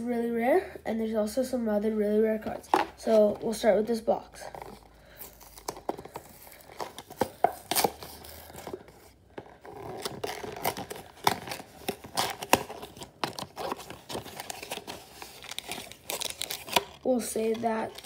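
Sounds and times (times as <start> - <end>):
foil packs crinkling: 4.4 - 18.0
cardboard box ripping: 5.3 - 18.0.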